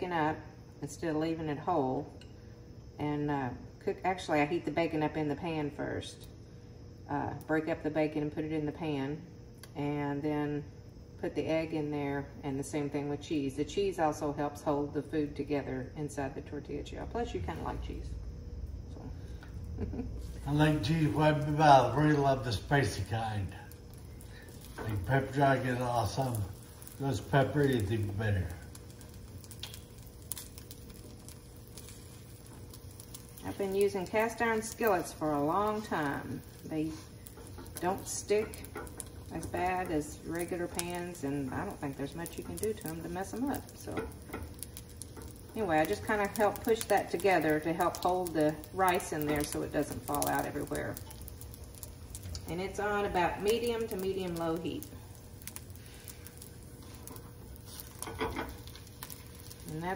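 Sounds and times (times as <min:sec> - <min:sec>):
steady low hum: 0:00.0 - 0:59.9
egg sizzling in skillet: 0:10.5 - 0:59.9
spatula scraping skillet: 0:28.8 - 0:48.1, 0:55.5 - 0:59.9.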